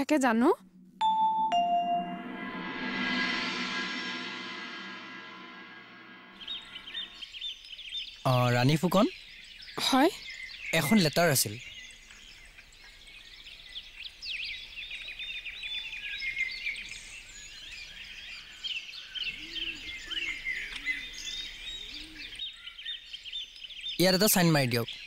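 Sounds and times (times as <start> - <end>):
small birds chirping: 7.0 - 25.0.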